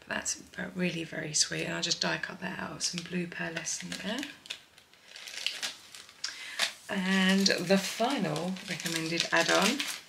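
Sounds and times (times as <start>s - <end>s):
plastic packet crinkling: 2.8s - 10.0s.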